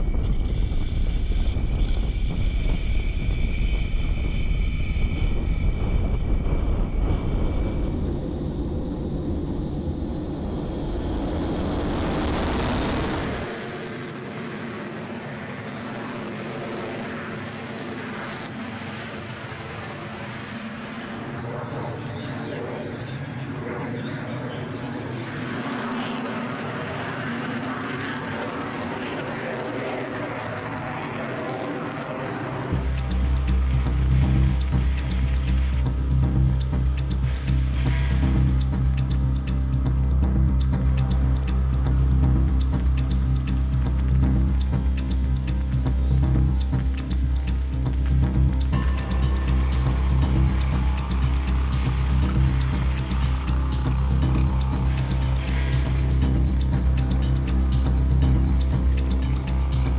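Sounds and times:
jet engine: 0:00.0 - 0:36.0, 0:48.6 - 0:59.9
high steady whine: 0:00.0 - 0:59.9
wind rumble on microphone: 0:00.0 - 0:59.9.

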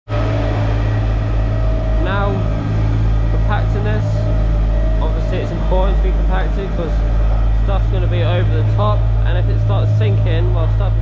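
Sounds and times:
roller diesel engine droning: 0:00.1 - 0:11.0.

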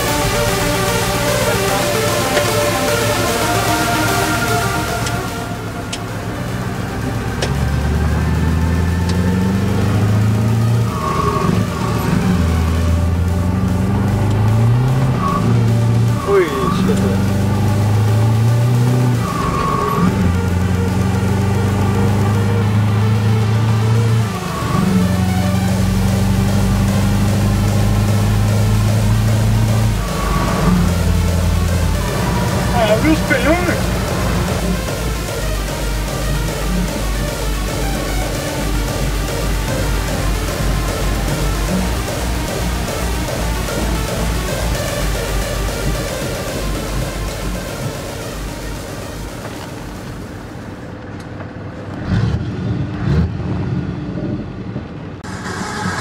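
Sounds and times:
truck engine accelerating through gears: 0:00.0 - 0:56.0.

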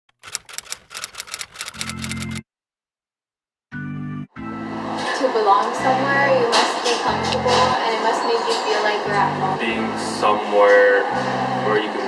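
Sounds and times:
typewriter keys clacking: 0:00.1 - 0:02.4.

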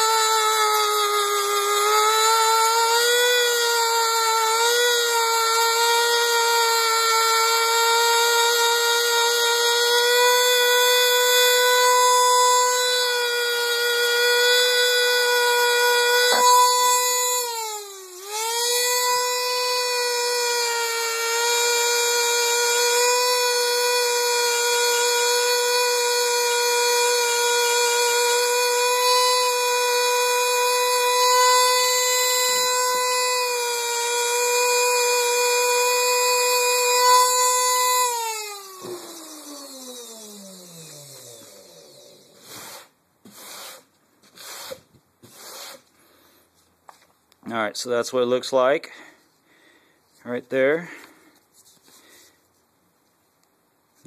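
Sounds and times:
rotary tool whining: 0:00.0 - 0:45.9.

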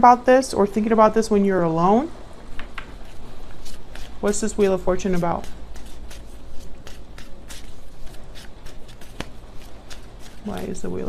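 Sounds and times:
cards shuffling and flicking: 0:02.6 - 0:11.0.

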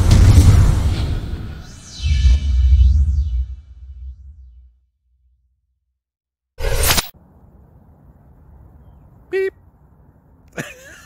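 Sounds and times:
intro swoosh: 0:00.0 - 0:04.8.

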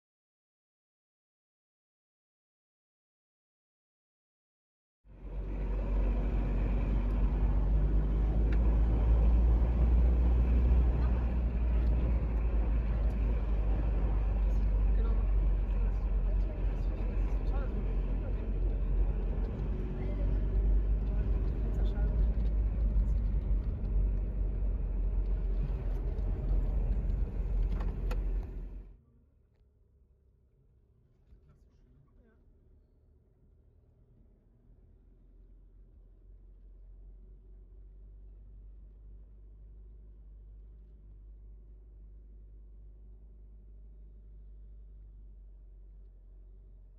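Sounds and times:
car engine and tyre noise: 0:05.1 - 0:30.2.

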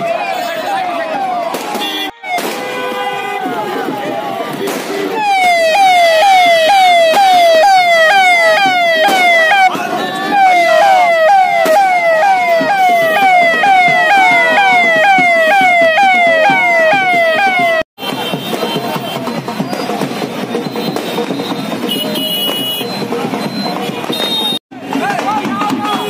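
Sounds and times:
siren wailing: 0:00.0 - 0:01.6, 0:05.1 - 0:17.9.

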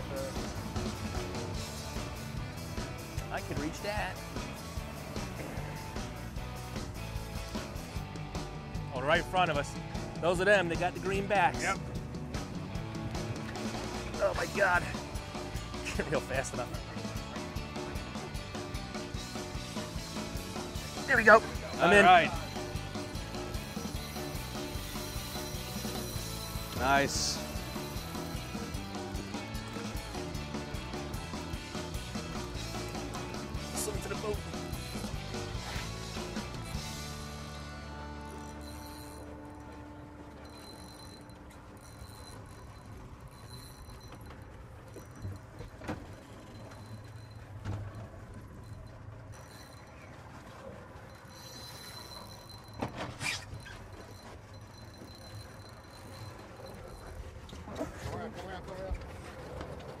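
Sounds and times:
background music: 0:00.0 - 0:43.6
outboard motor idling: 0:00.0 - 1:00.0.

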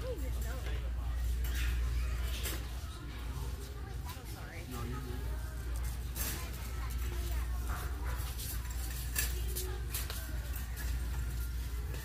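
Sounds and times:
faint background voices: 0:00.0 - 0:12.0
shopping cart rattling: 0:00.0 - 0:12.0.

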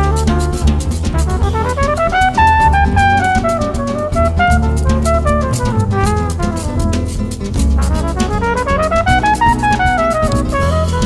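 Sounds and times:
drum cymbals: 0:00.0 - 0:08.3
jazz quartet playing: 0:00.0 - 0:11.0
low bass line: 0:00.0 - 0:11.0
trumpet melodic run: 0:00.0 - 0:11.0.

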